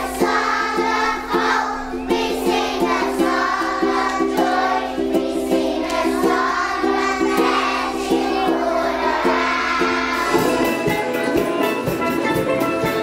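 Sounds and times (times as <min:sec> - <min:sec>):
children singing in unison: 0:00.0 - 0:11.5
musical accompaniment: 0:00.0 - 0:13.0.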